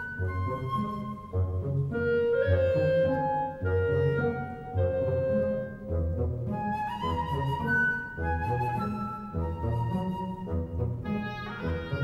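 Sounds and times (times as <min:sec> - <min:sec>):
slow orchestral music: 0:00.0 - 0:12.0.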